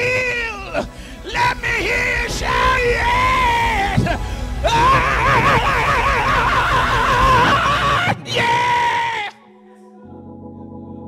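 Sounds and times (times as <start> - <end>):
low music backing: 0.0 - 8.3
preacher singing long notes: 0.0 - 10.2.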